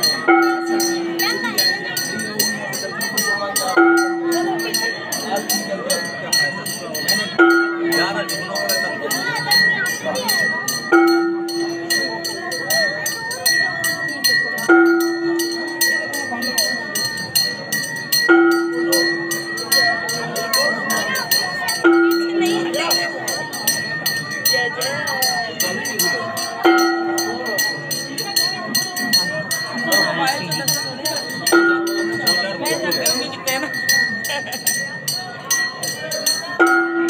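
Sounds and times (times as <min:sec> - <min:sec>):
high bell ringing steadily: 0:00.0 - 0:37.0
voices singing or chanting: 0:00.0 - 0:37.0.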